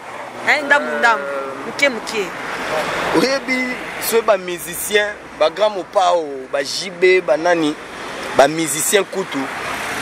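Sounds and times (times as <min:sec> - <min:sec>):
car passing: 0:00.0 - 0:10.0
man speaking: 0:00.6 - 0:01.4, 0:02.6 - 0:07.8, 0:08.4 - 0:09.5.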